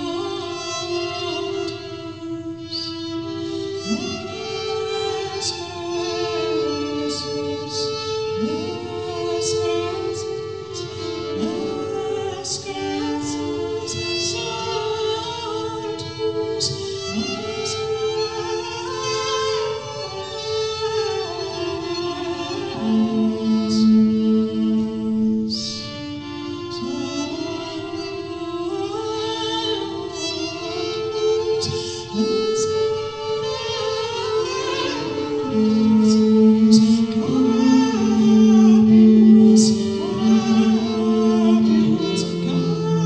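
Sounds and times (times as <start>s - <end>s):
looped violin notes: 0.0s - 43.0s
woman singing into microphone: 0.0s - 43.0s.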